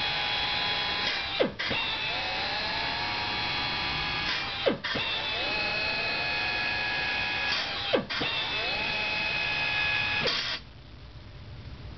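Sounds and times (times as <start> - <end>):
drill whining: 0.0 - 10.6.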